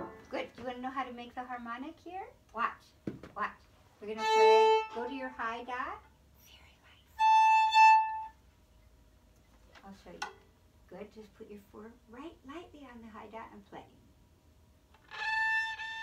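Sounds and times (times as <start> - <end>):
violin held notes: 4.2 - 5.4.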